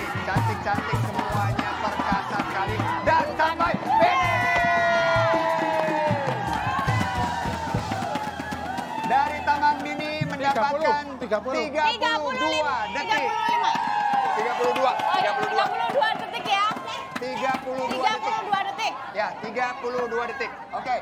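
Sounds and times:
background music with steady beat: 0.0 - 18.9
crowd cheering and shouting: 0.0 - 21.0
sharp claps: 13.1 - 18.7.

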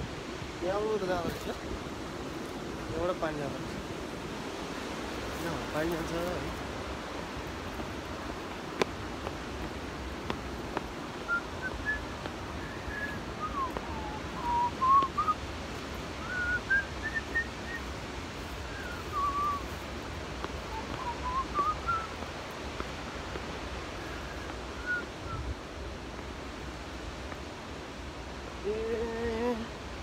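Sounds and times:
wind rumble on microphone: 0.0 - 30.0
person whistling a tune: 12.6 - 15.4, 16.2 - 17.8, 18.7 - 19.7, 20.7 - 22.1, 24.8 - 25.4.

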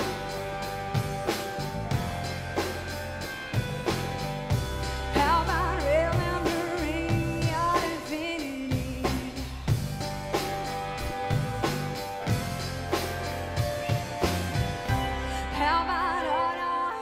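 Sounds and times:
drum-kit beat: 0.0 - 15.2
bass: 0.0 - 17.0
guitar: 0.0 - 17.0
woman singing: 5.1 - 9.8, 15.0 - 17.0.

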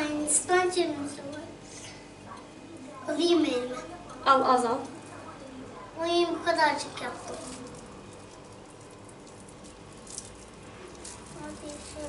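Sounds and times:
hands squishing sticky mixture: 6.9 - 12.0.

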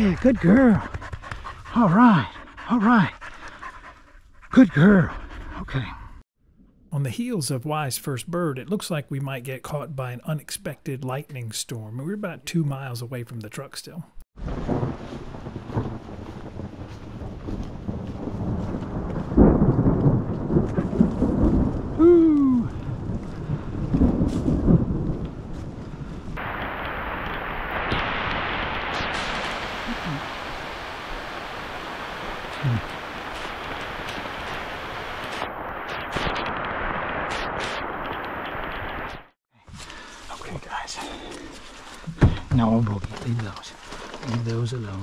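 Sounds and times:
thunder rumbling: 14.4 - 39.4
heavy rain hissing: 26.4 - 39.3.

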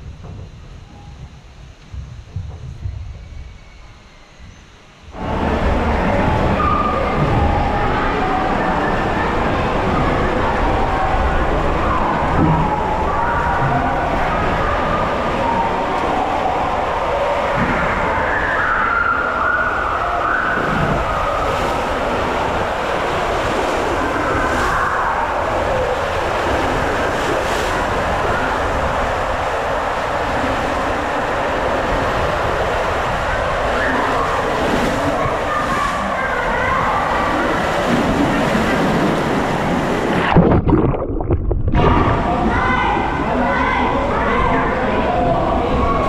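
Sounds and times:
water rushing in slide tube: 5.2 - 46.0.

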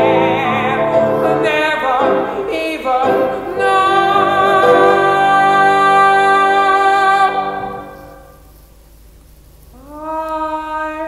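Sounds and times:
young man singing: 0.0 - 7.8.

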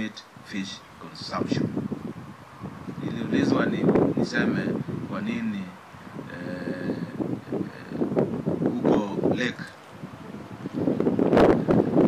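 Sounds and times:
wind buffeting microphone: 0.3 - 12.0.

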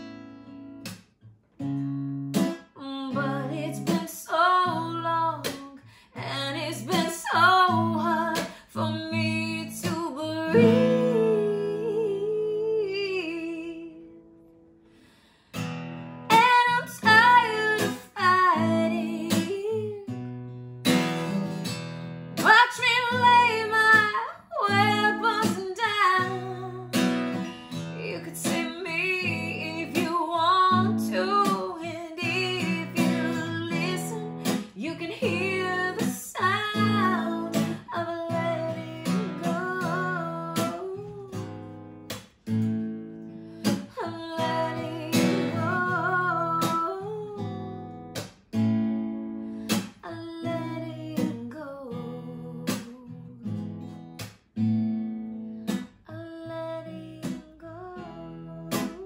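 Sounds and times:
strummed acoustic guitar: 0.0 - 13.3, 14.0 - 56.2, 56.8 - 59.0
woman singing slow song: 2.8 - 14.4, 16.3 - 20.3, 22.4 - 41.6, 43.6 - 47.8, 49.7 - 53.7, 56.0 - 59.0.

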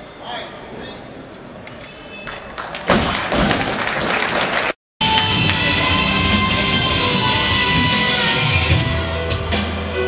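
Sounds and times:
audience applause and cheering: 2.5 - 7.8.

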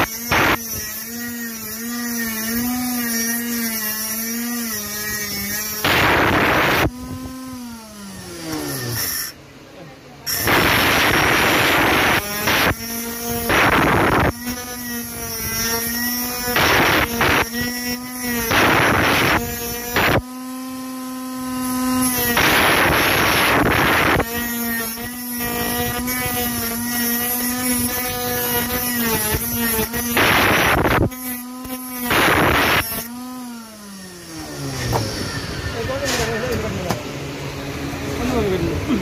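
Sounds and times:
grinder disc cutting metal rods: 0.0 - 9.4, 10.2 - 39.0
grinder motor high whine: 0.0 - 39.0.

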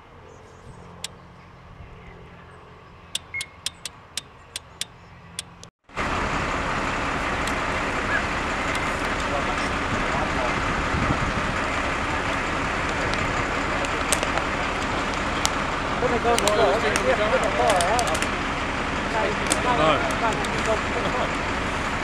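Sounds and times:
fire engine rumbling: 0.0 - 22.0
sharp cracks: 12.1 - 18.4.

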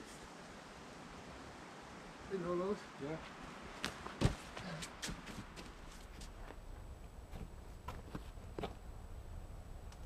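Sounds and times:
hands and shoes scuffing rock: 3.8 - 6.6.

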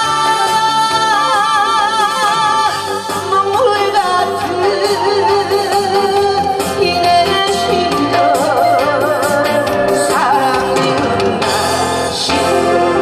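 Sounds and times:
instrumental backing music: 0.0 - 13.0
woman singing into a microphone: 0.0 - 13.0.

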